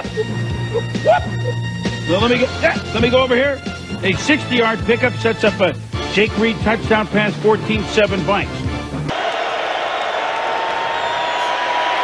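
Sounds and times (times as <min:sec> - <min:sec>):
stadium crowd noise: 0:09.1 - 0:12.0.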